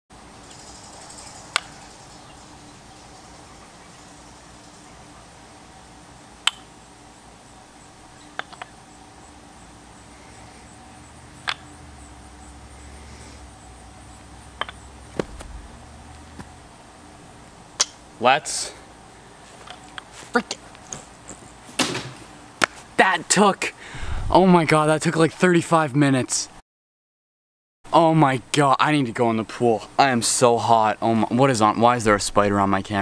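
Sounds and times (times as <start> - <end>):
faint steady hum: 0.2 - 26.5
wooden toy ball clacking: 8.4 - 8.7, 11.4 - 11.7, 14.6 - 15.3.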